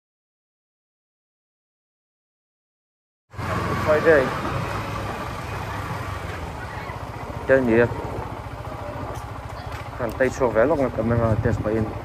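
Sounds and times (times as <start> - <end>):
motorcycle engine running: 3.3 - 12.0
road noise: 3.3 - 12.0.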